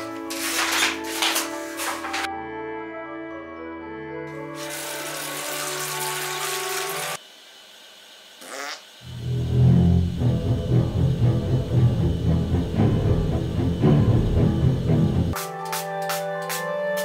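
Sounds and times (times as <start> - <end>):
toilet flushing: 4.3 - 7.2
loud drum-heavy music: 14.0 - 17.0.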